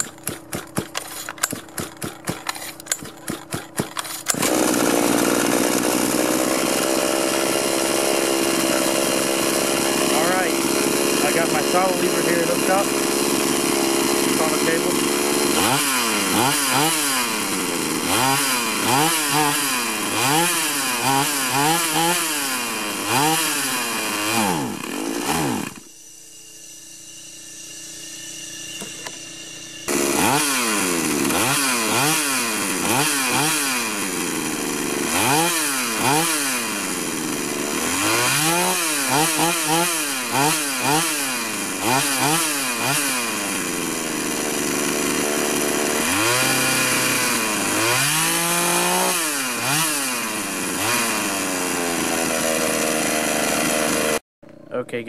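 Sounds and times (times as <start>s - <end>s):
pocket bike engine revving: 0.0s - 25.9s, 28.6s - 54.2s.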